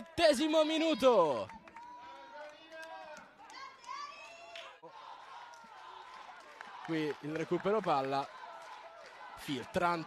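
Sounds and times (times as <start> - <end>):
open-air stadium ambience: 0.0 - 10.0.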